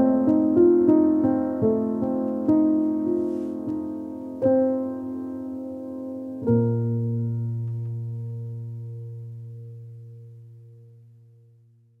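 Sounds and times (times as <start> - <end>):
low piano chord: 0.0 - 12.0.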